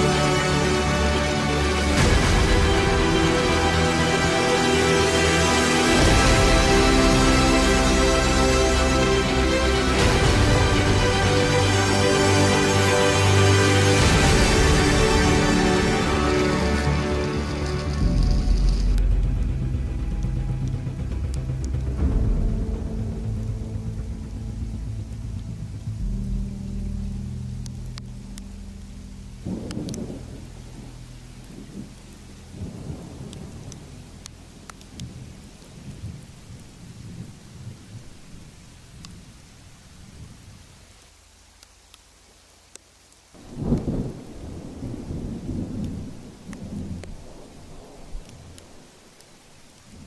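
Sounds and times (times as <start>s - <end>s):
steady rain: 0.0s - 50.0s
thunder rolling: 29.4s - 38.5s, 43.4s - 48.8s.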